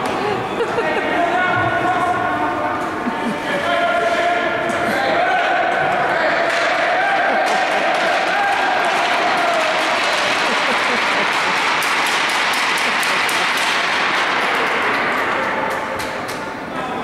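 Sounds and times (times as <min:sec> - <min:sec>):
spectators applauding: 0:06.4 - 0:16.4.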